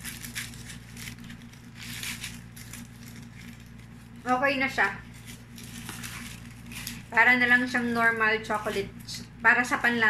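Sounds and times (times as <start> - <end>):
wrapper crinkling: 0.0 - 8.0
steady low hum: 0.0 - 10.0.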